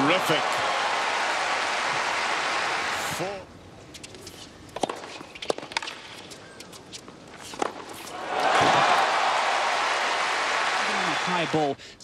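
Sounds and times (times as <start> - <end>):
crowd applause: 0.0 - 3.1, 8.3 - 11.6.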